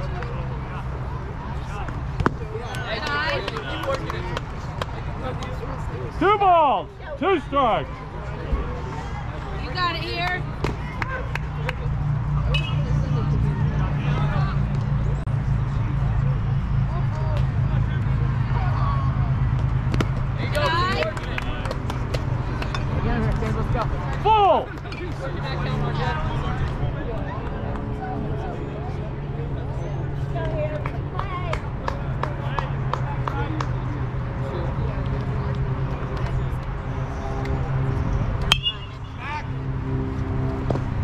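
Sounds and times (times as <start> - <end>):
steady low rumble: 8.1 - 33.2.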